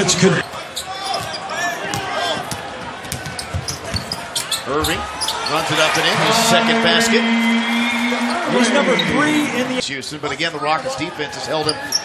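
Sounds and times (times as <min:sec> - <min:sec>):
arena background: 0:05.6 - 0:09.8.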